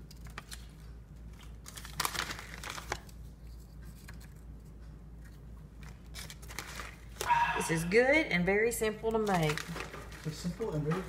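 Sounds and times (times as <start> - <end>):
plastic chip bag crinkling: 1.3 - 3.2, 5.8 - 7.2, 9.1 - 11.0.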